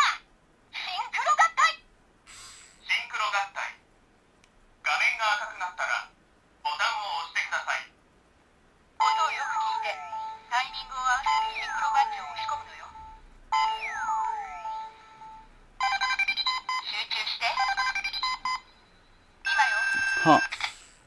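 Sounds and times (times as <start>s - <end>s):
recorded voice with music: 9.0s - 15.6s
steady electronic beep: 10.0s - 20.5s
toy sweeping electronic tones: 11.3s - 16.6s.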